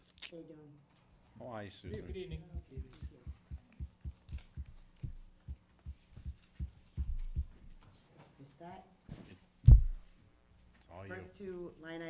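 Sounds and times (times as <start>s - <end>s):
faint steady hum: 0.0s - 12.0s
papers and hands knocking table: 2.6s - 7.8s.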